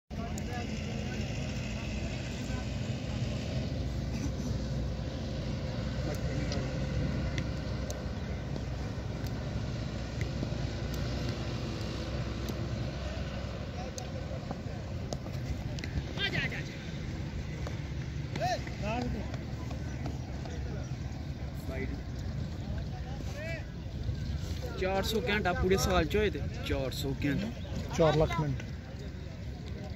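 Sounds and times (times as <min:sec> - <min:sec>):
distant voices: 0:00.1 - 0:29.9.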